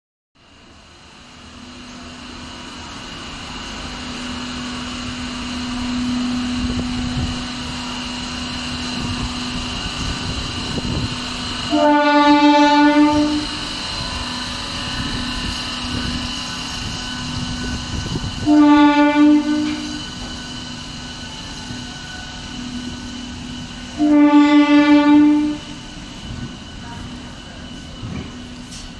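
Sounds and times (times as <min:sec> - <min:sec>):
electric train humming: 0:00.4 - 0:28.9
train horn: 0:11.6 - 0:13.6, 0:18.4 - 0:20.2, 0:23.9 - 0:25.8.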